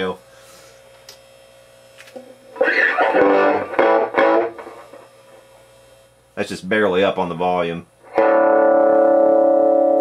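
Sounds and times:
amplifier hum: 0.0s - 10.0s
electric guitar chords: 2.2s - 5.6s, 8.0s - 10.0s.

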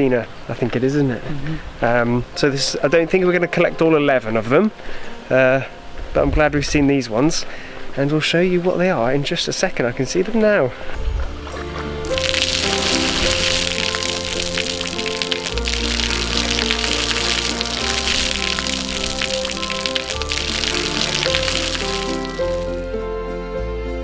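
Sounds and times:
background music with bass notes: 11.0s - 24.0s
fountain water splashing: 12.0s - 22.9s.

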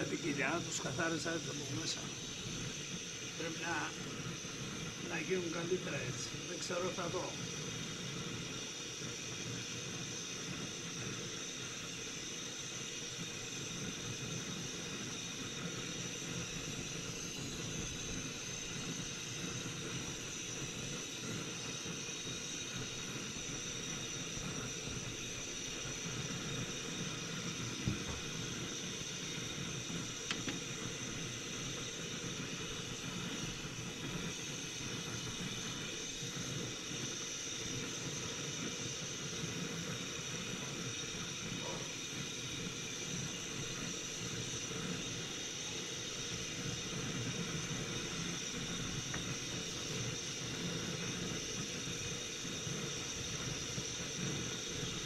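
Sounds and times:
steady hiss: 0.0s - 55.0s.

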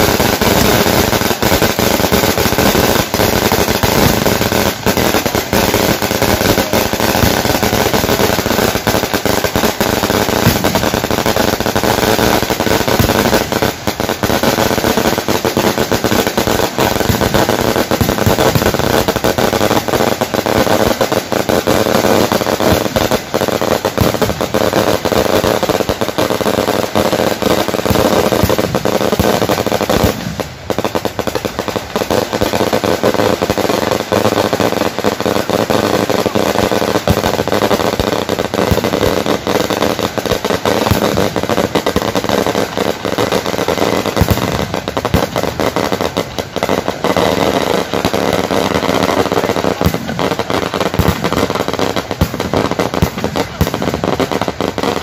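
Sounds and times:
firecrackers crackling: 0.0s - 55.0s.

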